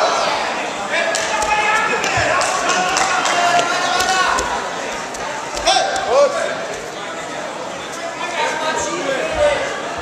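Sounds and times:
people shouting in echoing hall: 0:00.0 - 0:04.8.

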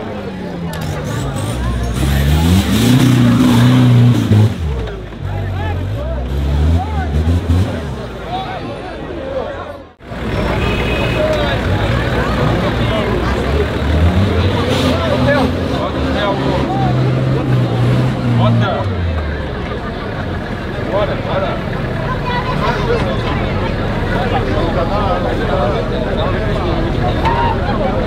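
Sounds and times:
off-road engine revving: 0:00.0 - 0:09.1, 0:10.0 - 0:28.0
crowd chattering: 0:00.0 - 0:28.0.

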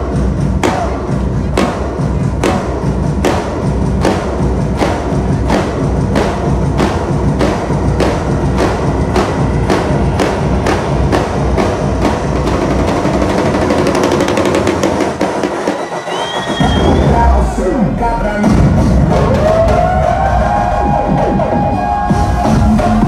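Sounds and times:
kick drum beat: 0:00.0 - 0:13.4, 0:18.4 - 0:23.0
drum roll build-up: 0:00.0 - 0:23.0
loud dance music: 0:00.0 - 0:23.0.

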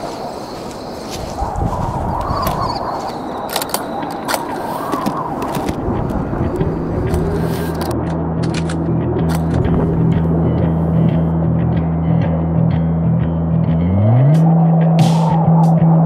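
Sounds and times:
low sustained synth tones: 0:00.0 - 0:16.0.

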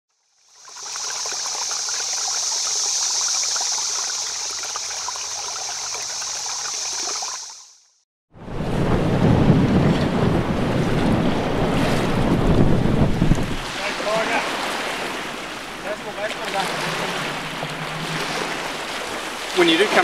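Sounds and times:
trickling running water: 0:00.4 - 0:07.8, 0:13.2 - 0:20.0
wind buffeting microphone: 0:08.4 - 0:20.0.

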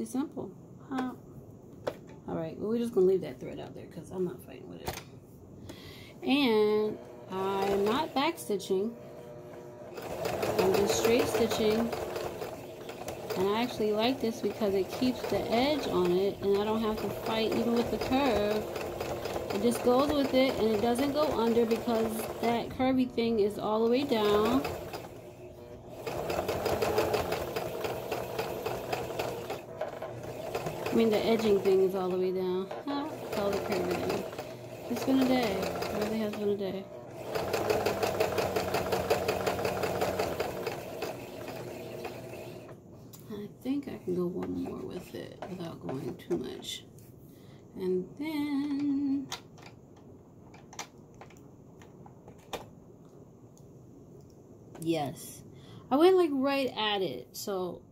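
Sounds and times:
sewing machine stitching: 0:06.5 - 0:08.4, 0:09.3 - 0:42.8.

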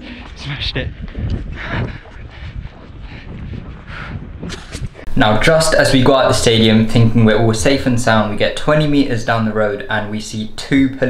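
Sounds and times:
wind rumbling on microphone: 0:00.0 - 0:05.2.

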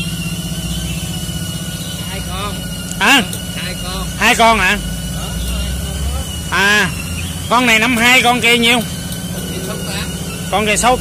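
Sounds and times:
diesel tractor engine idling: 0:00.0 - 0:11.0
thin high whine: 0:01.2 - 0:11.0.

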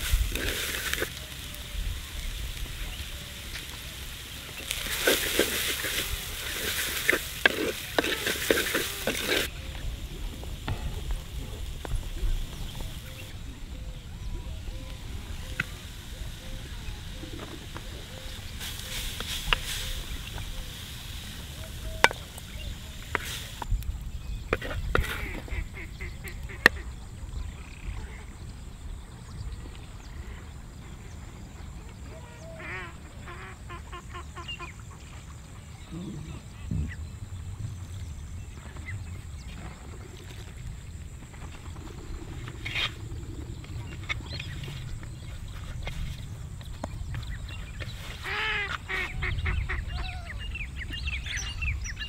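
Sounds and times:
cabbage sizzling in oil: 0:00.0 - 0:13.2, 0:14.9 - 0:23.7
wooden spatula scraping a pot: 0:04.6 - 0:09.5
animal calling: 0:35.7 - 0:37.0.

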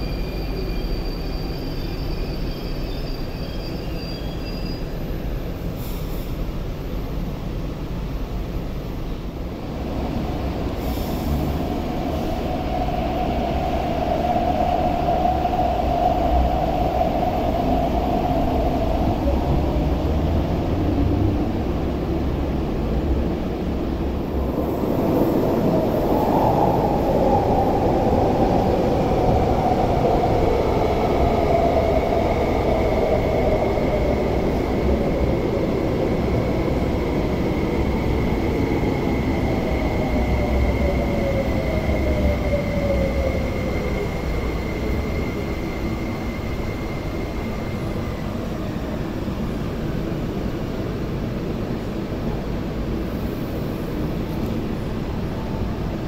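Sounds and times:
electric train rumbling: 0:00.0 - 0:56.0.

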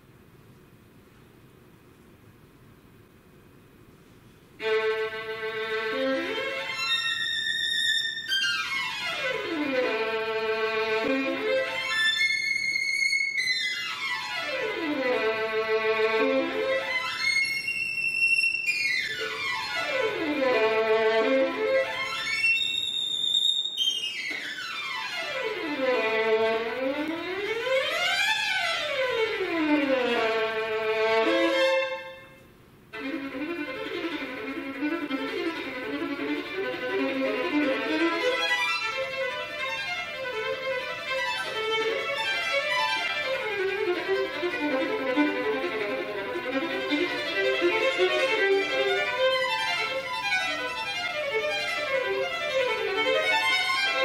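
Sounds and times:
solo violin scale runs: 0:04.6 - 0:32.4, 0:33.0 - 0:54.0.

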